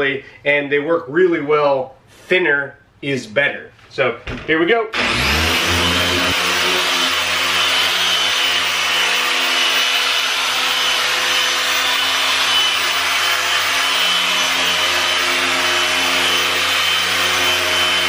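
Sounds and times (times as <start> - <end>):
electric orbital polisher running: 5.0 - 18.0.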